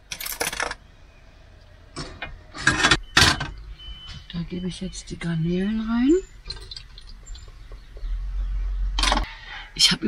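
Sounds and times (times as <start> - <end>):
kitchen items clinking: 6.5 - 7.2.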